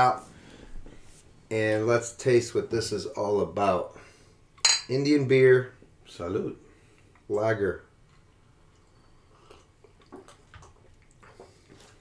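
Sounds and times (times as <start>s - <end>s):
people sipping and swallowing: 8.0s - 12.0s.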